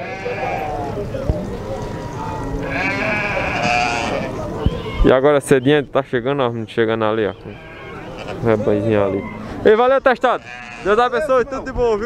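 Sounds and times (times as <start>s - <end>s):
sheep bleating: 0.0s - 0.8s, 2.6s - 4.4s, 7.2s - 9.5s, 10.2s - 11.2s
murmur of voices: 0.0s - 12.0s.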